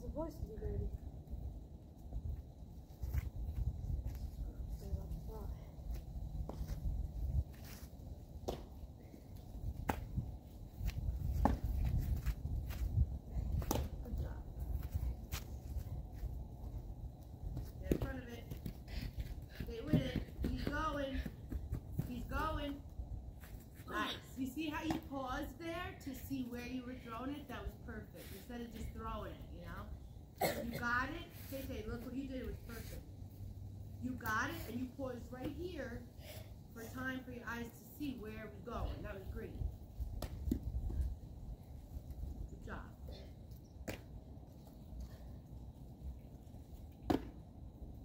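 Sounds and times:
wind rumble on microphone: 0.0s - 8.4s, 9.0s - 23.6s, 38.8s - 43.2s.

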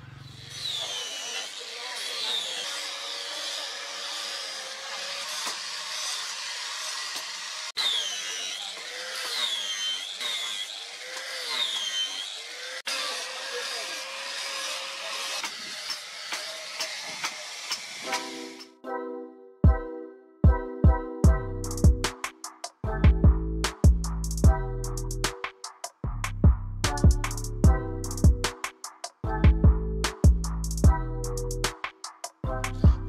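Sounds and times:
power grinder grinding steel: 0.0s - 18.7s.

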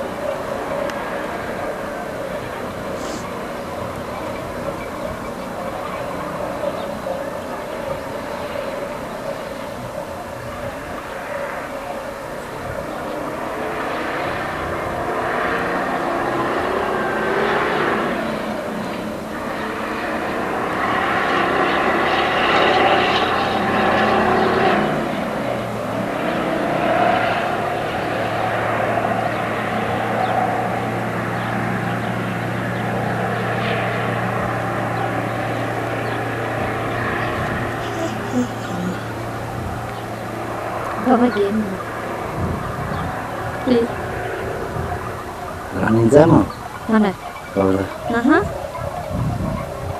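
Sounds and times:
low steady hum: 27.2s - 48.6s
vehicle engine running: 27.4s - 48.4s.

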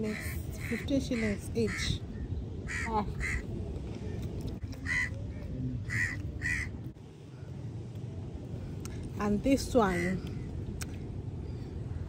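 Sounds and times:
low background rush: 0.0s - 12.0s
bird harsh calls: 0.1s - 3.5s, 4.8s - 6.8s.

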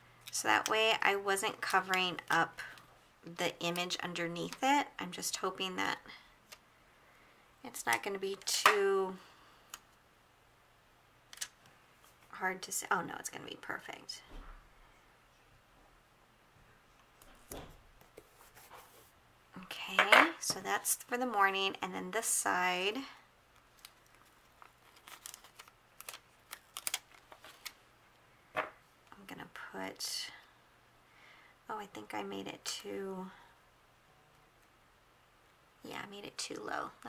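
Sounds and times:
sticker peeling crackles: 23.6s - 27.8s.

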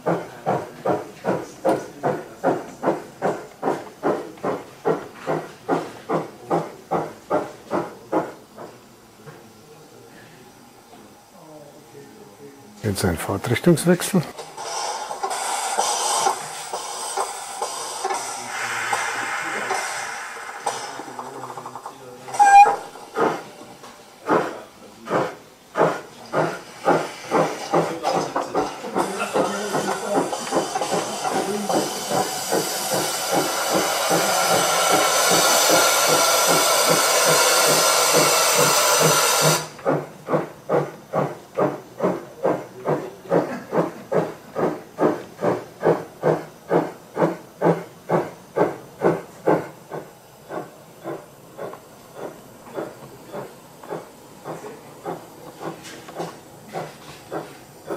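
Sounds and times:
loud hiss of cylinder steam: 13.0s - 57.9s
steam whistle toot: 22.3s - 23.0s
steam engine exhaust chuffs: 28.9s - 57.9s.

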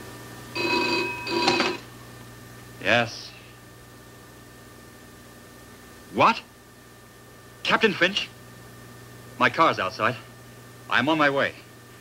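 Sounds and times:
telephone bell ringing: 0.6s - 1.9s.

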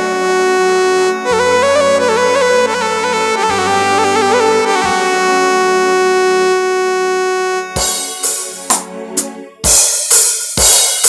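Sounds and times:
electronic keyboard long note: 0.0s - 9.8s.

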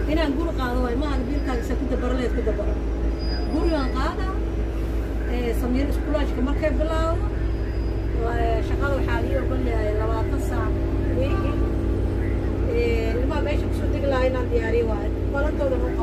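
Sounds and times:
bus engine drone: 0.0s - 16.0s
passengers talking: 0.0s - 16.0s.

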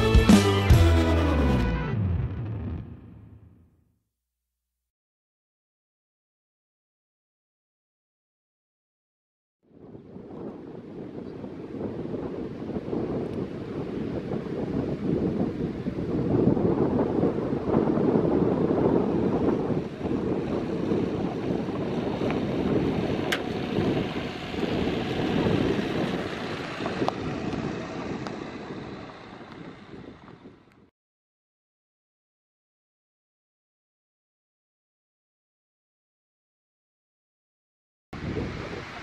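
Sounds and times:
surf: 0.0s - 2.9s
wind buffeting microphone: 9.7s - 30.9s, 38.2s - 39.0s.

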